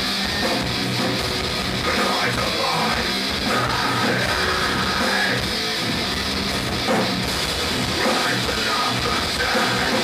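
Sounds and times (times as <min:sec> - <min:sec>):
distorted electric guitars: 0:00.0 - 0:10.0
driving drum kit: 0:00.0 - 0:10.0.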